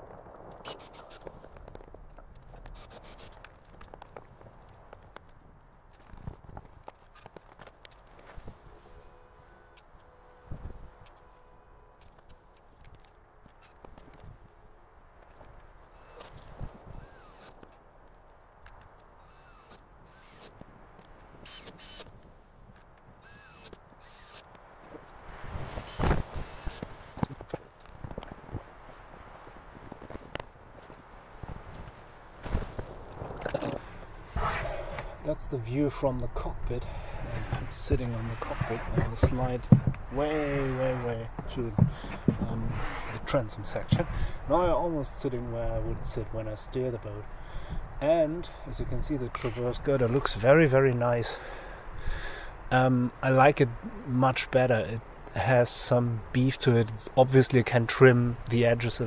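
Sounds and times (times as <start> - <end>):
footsteps: 37.1 - 44.2.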